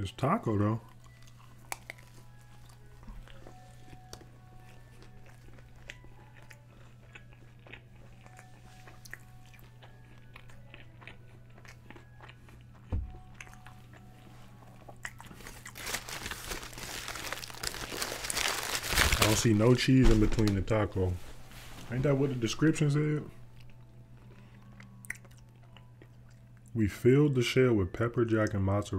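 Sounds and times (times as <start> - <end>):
crunchy chewing: 0.8 - 19.4, 23.5 - 26.7
crinkling rustle: 15.3 - 22.1.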